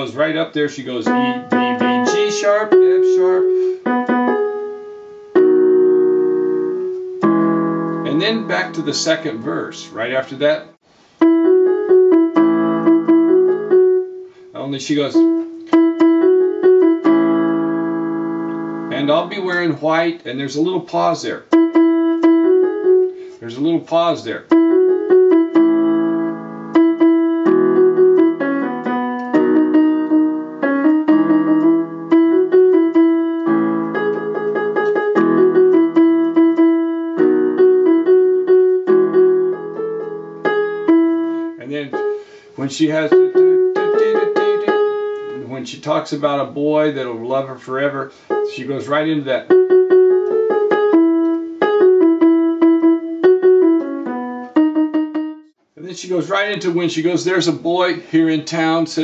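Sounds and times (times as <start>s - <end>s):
electronic keyboard piano chords and melody: 0.0s - 59.0s.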